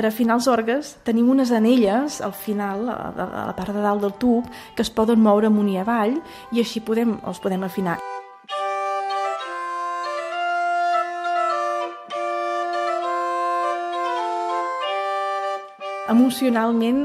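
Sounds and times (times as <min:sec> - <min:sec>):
portative organ playing: 0:01.8 - 0:17.0.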